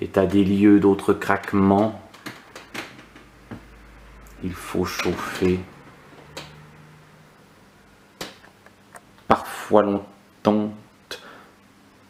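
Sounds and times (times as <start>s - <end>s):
low hum: 3.2s - 9.3s.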